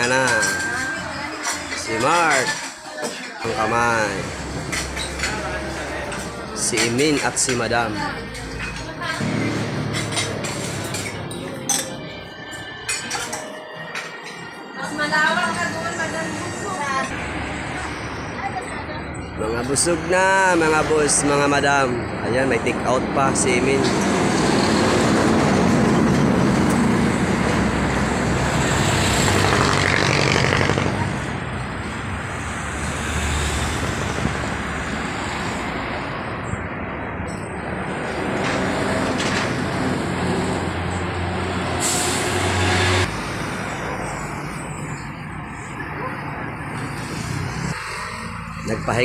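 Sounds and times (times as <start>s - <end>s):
people talking: 0.0s - 4.3s, 17.7s - 23.8s
roadside traffic noise: 0.0s - 49.0s
vehicle engine running close by: 25.4s - 34.4s.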